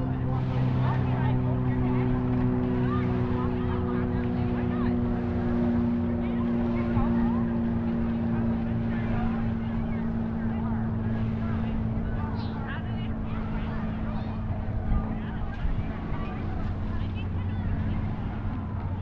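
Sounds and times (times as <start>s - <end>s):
motorboat engine running: 0.0s - 19.0s
scattered voices: 0.0s - 19.0s.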